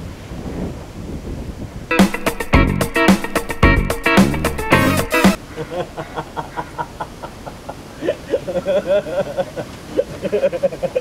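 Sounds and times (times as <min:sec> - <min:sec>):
music: 0:01.9 - 0:05.4.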